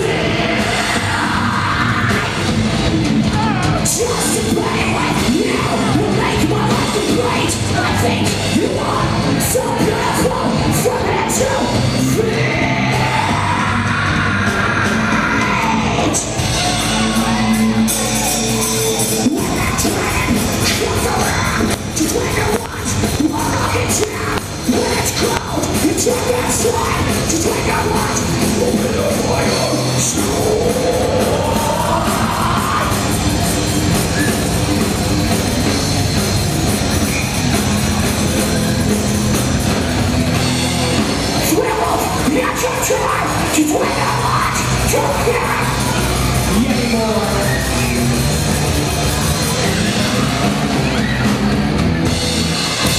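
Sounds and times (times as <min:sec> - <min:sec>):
drums and guitars: 0:00.0 - 0:52.9
hardcore band playing loud: 0:00.0 - 0:52.9
screamed vocal: 0:09.6 - 0:22.8.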